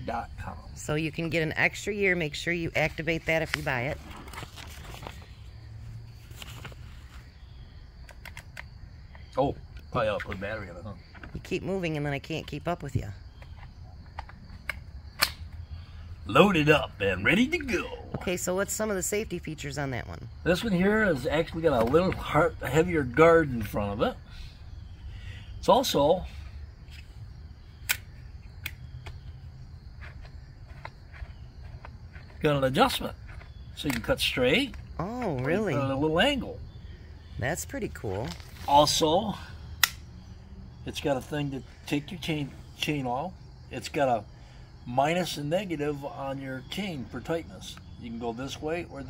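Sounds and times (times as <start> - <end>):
faint insect chirr: 0.0 - 49.0
faint outdoor background: 0.0 - 49.0.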